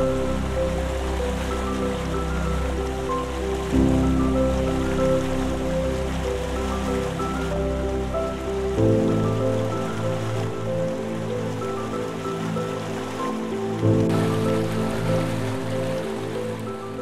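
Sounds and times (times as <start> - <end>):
slow piano chords: 0.0 - 17.0
waterfall rushing: 0.0 - 17.0.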